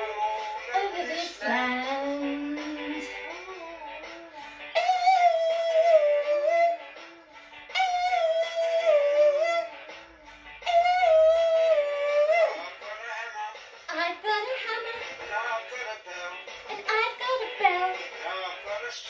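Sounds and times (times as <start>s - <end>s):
person singing high notes: 1.8s - 9.8s, 10.6s - 12.6s.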